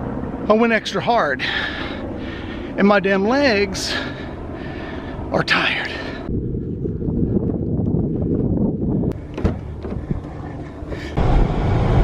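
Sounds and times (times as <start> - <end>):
wind rumbling on microphone: 1.4 - 12.0.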